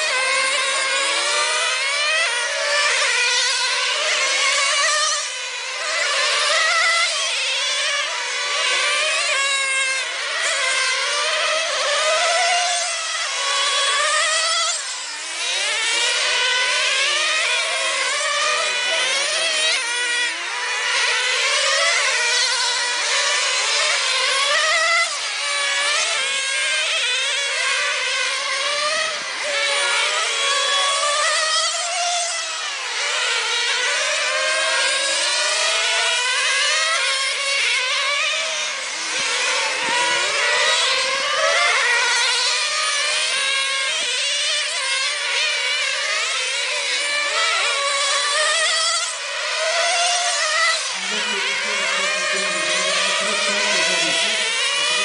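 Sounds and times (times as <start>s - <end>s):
model race car motors whining: 0.0s - 55.0s.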